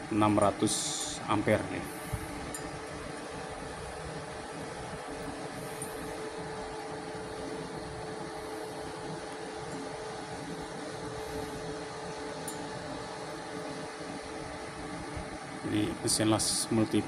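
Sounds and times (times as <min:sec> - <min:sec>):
faint steady whine: 0:00.0 - 0:17.0
welder cooling fan humming: 0:00.0 - 0:17.0.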